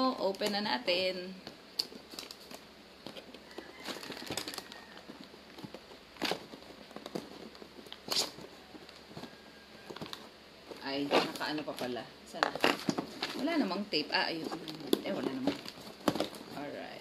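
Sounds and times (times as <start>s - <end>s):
cardboard box rustling and scraping: 2.2s - 17.0s.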